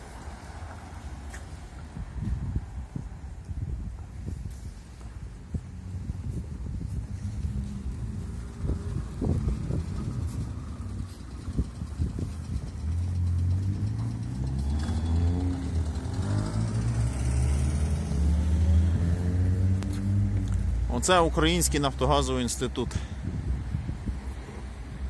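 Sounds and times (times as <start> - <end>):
street rumble: 0.0 - 25.0
car engine accelerating: 7.2 - 21.0.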